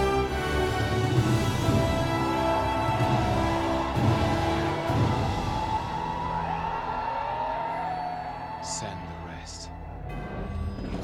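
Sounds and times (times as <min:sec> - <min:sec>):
orchestral film score: 0:00.0 - 0:11.0.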